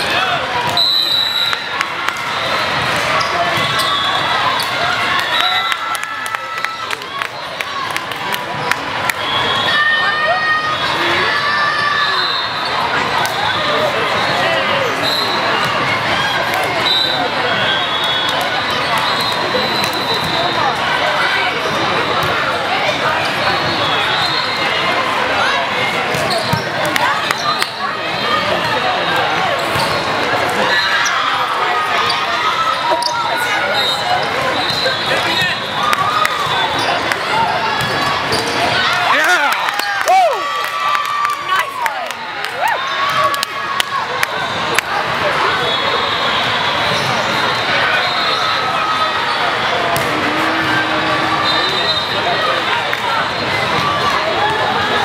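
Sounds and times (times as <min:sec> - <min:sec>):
echoing chatter of many voices: 0:00.0 - 0:55.0
sneakers squeaking on floor: 0:03.1 - 0:04.3, 0:26.1 - 0:26.8
volleyballs struck and bouncing: 0:49.8 - 0:51.3.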